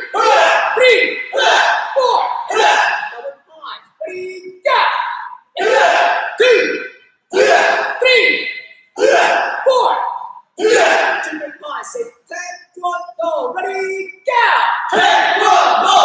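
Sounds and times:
voices shouting counts: 0.0s - 16.0s.

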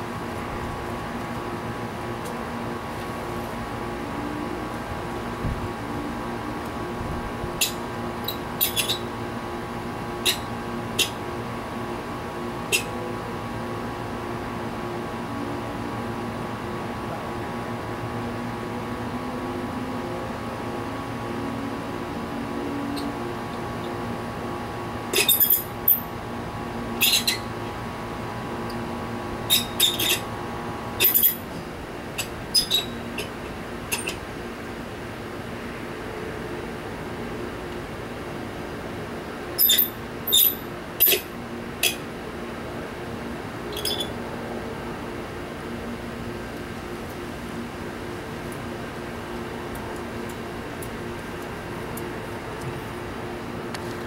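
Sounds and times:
steady background hum: 0.0s - 54.0s.

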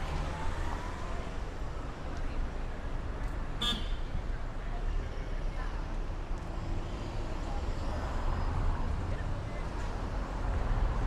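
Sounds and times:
cars passing and turning: 0.0s - 11.0s
low traffic rumble: 0.0s - 11.0s.

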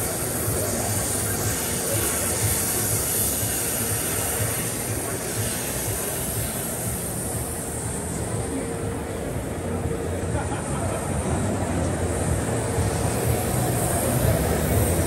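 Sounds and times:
waterjet cutting metal hiss: 0.0s - 10.2s, 11.0s - 15.0s.

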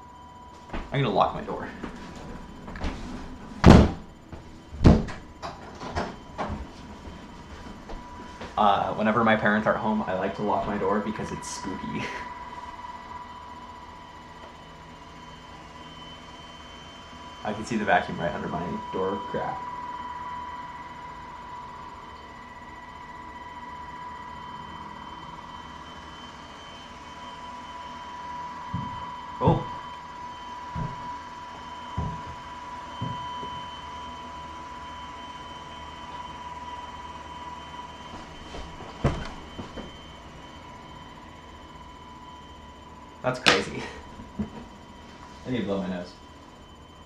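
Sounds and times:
robot vacuum whine: 0.0s - 47.0s.

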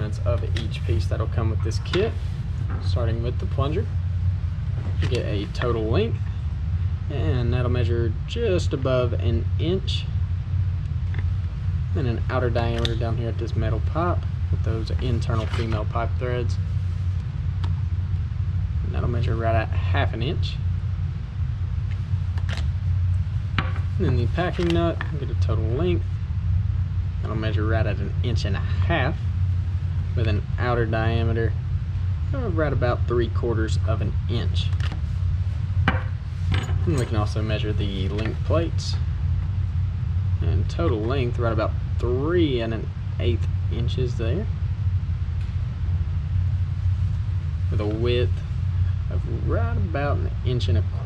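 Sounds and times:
low background rumble: 0.0s - 51.0s
steady low hum: 0.0s - 51.0s.

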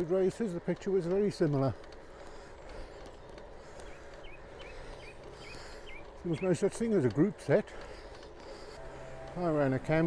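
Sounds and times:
bicycle tyres on wet tarmac: 0.0s - 10.0s
bird chirping: 3.8s - 6.9s.

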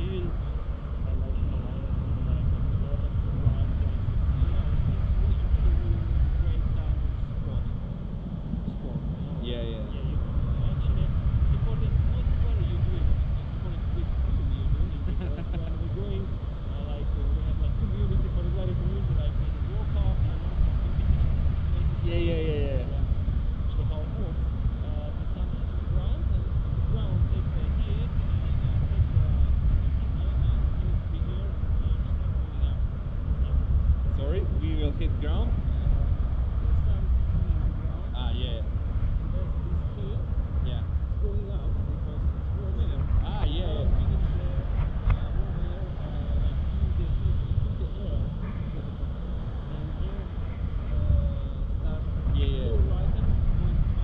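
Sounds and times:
faint voices: 0.0s - 54.0s
wind buffeting microphone: 0.0s - 54.0s.

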